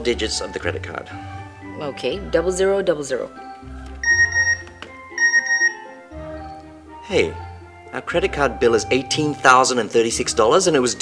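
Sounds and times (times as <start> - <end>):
background music: 0.0 - 11.0
phone text alert beeps: 4.0 - 5.9.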